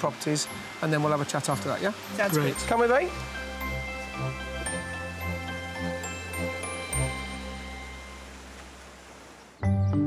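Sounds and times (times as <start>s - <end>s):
held music chord: 0.5s - 8.6s.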